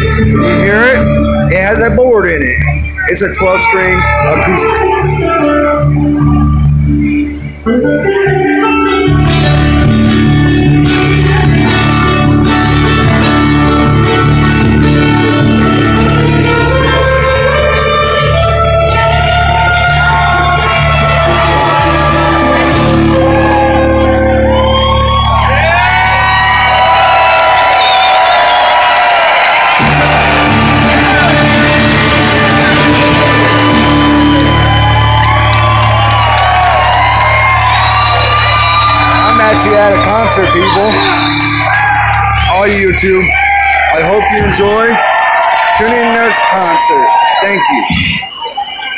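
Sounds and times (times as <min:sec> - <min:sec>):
acoustic guitar: 0:00.0 - 0:03.0, 0:03.6 - 0:26.6, 0:29.7 - 0:43.1
live band music in hall: 0:00.0 - 0:45.5
voices singing and shouting: 0:02.6 - 0:09.2.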